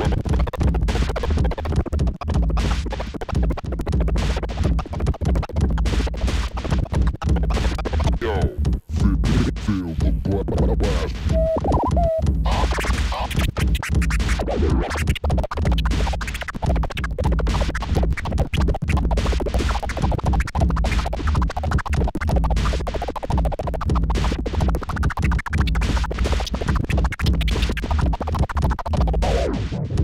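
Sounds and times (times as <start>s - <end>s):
bass-heavy backing music: 0.0s - 30.0s
vinyl record scratching: 0.0s - 30.0s.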